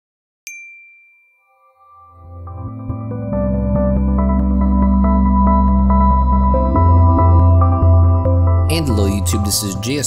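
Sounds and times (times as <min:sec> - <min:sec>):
bright high chime: 0:00.5 - 0:02.2
soft sustained music tones: 0:01.5 - 0:10.0.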